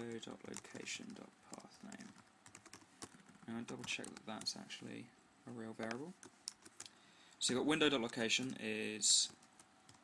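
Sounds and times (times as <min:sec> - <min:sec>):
computer keyboard clicking: 0:00.0 - 0:04.6, 0:05.8 - 0:07.0, 0:08.0 - 0:10.0.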